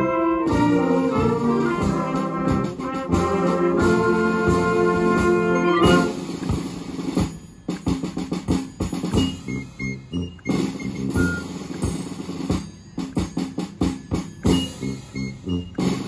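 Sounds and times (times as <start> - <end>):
concert band playing: 0.0 - 16.0.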